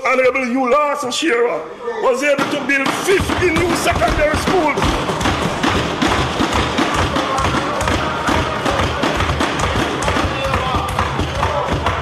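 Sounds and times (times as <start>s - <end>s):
people thumping desks: 2.2s - 12.0s.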